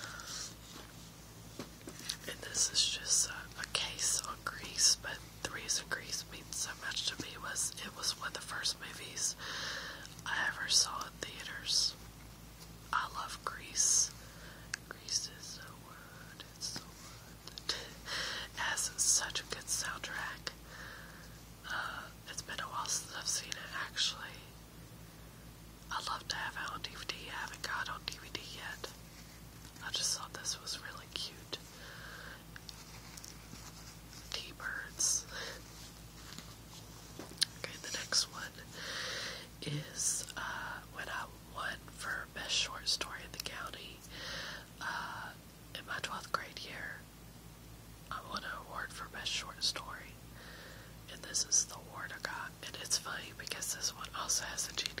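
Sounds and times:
woman whispering: 0:00.0 - 0:00.6, 0:02.0 - 0:09.4, 0:10.0 - 0:12.1, 0:12.9 - 0:20.6, 0:21.6 - 0:24.5, 0:25.9 - 0:29.0, 0:29.8 - 0:31.8, 0:34.1 - 0:35.8, 0:37.4 - 0:38.8, 0:39.5 - 0:44.1, 0:44.8 - 0:47.0, 0:48.1 - 0:50.2, 0:51.1 - 0:55.0.

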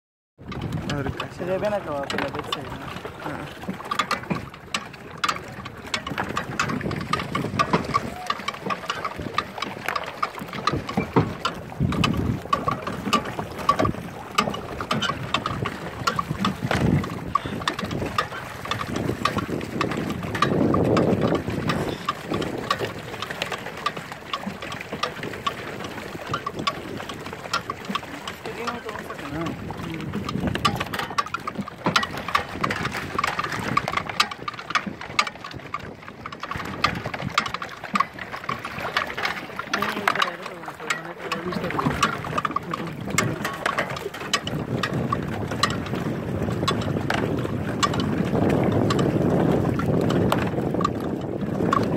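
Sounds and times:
churning water: 0:00.4 - 0:51.9
wind: 0:00.4 - 0:51.9.

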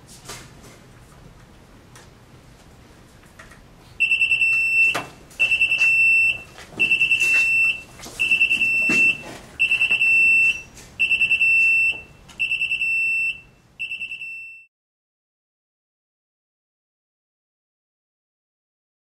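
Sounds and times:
electronic alarm beeping: 0:04.0 - 0:14.7.

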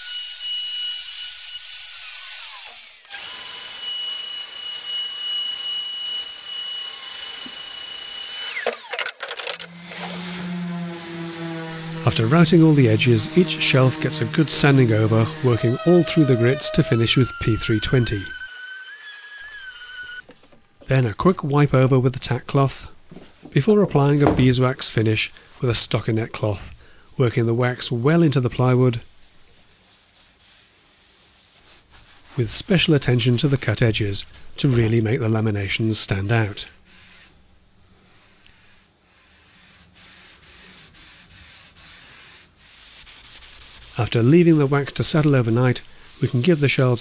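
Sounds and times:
cloth rubbing wood: 0:09.7 - 0:18.4, 0:22.6 - 0:24.7, 0:28.6 - 0:32.5, 0:36.4 - 0:47.0
orbital sander on plywood: 0:09.7 - 0:18.4.

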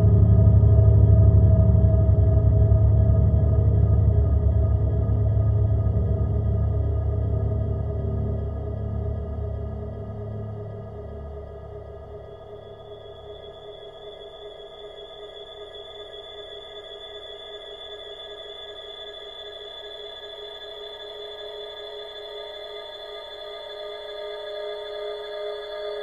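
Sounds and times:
low rumble: 0:00.0 - 0:11.4
processed gong drone music: 0:00.0 - 0:13.4.

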